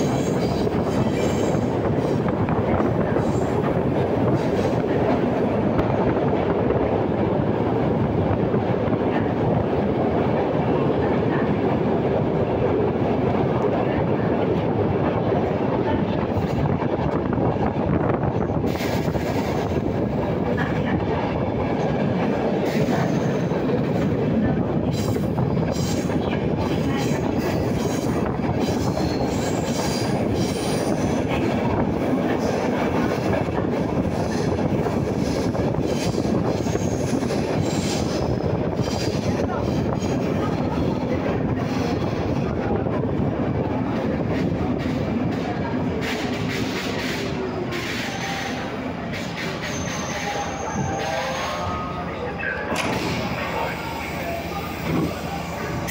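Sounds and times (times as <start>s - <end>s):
wheels rumbling on rails: 0.0s - 55.9s.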